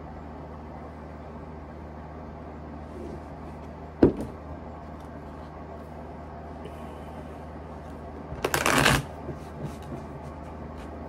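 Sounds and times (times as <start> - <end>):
cards shuffled quickly: 8.4 - 9.9.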